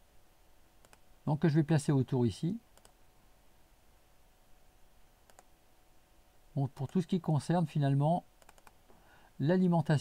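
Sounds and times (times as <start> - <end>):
computer mouse click: 0.8 - 1.0, 2.8 - 3.0, 5.2 - 5.5, 8.4 - 8.8.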